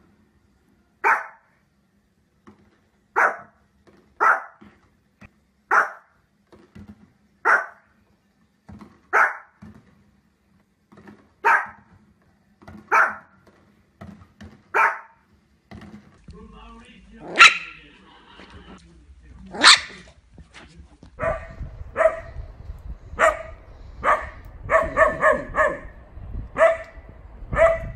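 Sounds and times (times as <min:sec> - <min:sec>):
puppy barking: 0:01.0 - 0:01.5, 0:03.2 - 0:03.6, 0:04.2 - 0:04.6, 0:05.7 - 0:06.2, 0:07.4 - 0:07.9, 0:09.1 - 0:09.6, 0:11.4 - 0:11.9, 0:12.9 - 0:13.4, 0:14.7 - 0:15.2, 0:17.2 - 0:17.9, 0:19.5 - 0:20.1, 0:21.2 - 0:22.4, 0:23.2 - 0:26.0, 0:26.6 - 0:27.9.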